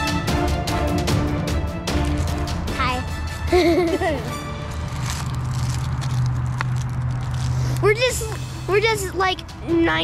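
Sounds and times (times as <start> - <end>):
paper crinkling: 4.6 - 8.4.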